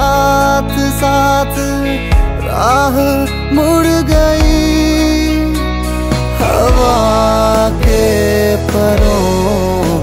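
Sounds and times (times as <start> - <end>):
steady bass: 0.0 - 10.0.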